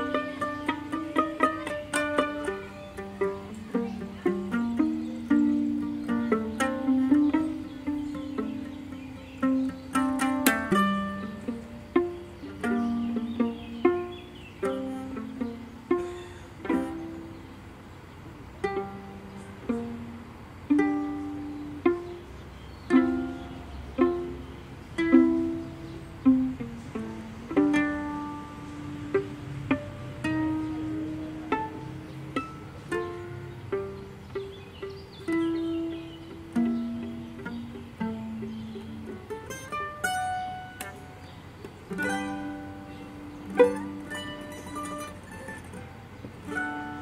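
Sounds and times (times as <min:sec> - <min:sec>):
plucked long-necked string instrument: 0:00.0 - 0:47.0
violin played pizzicato: 0:00.0 - 0:47.0.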